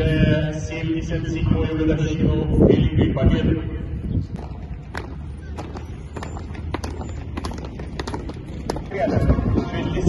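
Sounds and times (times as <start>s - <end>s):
steady low rumble: 0.0s - 10.0s
boots marching on asphalt: 4.2s - 10.0s.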